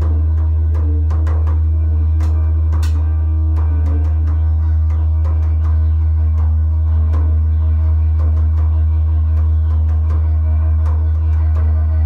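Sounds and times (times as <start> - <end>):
didgeridoo drone: 0.0 - 12.0
hand drum taps: 2.2 - 5.7.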